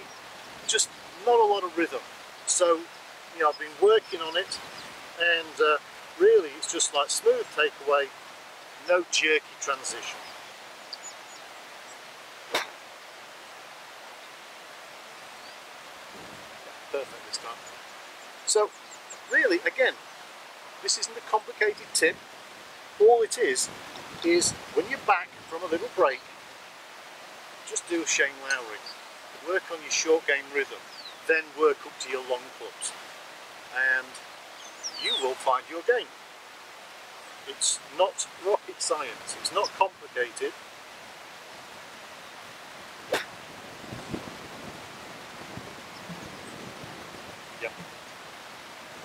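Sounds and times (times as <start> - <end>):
steady outdoor hiss: 0.0 - 49.0
man speaking: 0.7 - 2.8, 5.2 - 8.1, 8.8 - 10.1, 16.9 - 17.6, 18.5 - 18.7, 19.3 - 20.0, 20.8 - 22.2, 23.0 - 26.2, 27.7 - 28.8, 29.4 - 32.9, 33.7 - 34.2, 35.0 - 36.1, 37.5 - 40.5
golf club striking ball: 12.5 - 12.8, 43.1 - 43.4.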